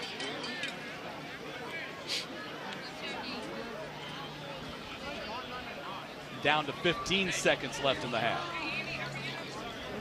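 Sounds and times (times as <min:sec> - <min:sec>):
distant murmur of voices: 0:00.0 - 0:10.0.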